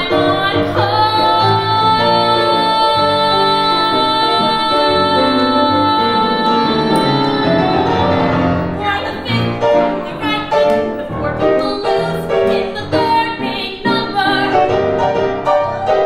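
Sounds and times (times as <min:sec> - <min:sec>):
piano chords: 0:00.0 - 0:16.0
woman singing a high note: 0:00.8 - 0:12.0.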